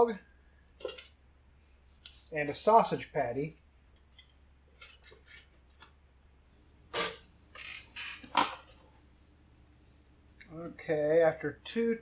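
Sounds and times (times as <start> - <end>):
squeaky scrapes and clunks: 6.8 - 8.7.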